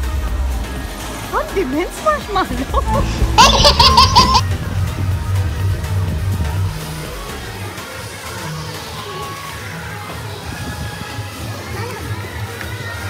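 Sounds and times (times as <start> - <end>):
background music with bass: 0.0 - 13.0
baby laughing: 2.5 - 4.4.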